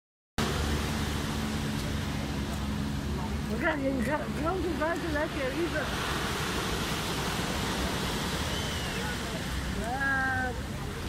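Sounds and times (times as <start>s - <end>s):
waves breaking on pebble beach: 0.4s - 11.0s.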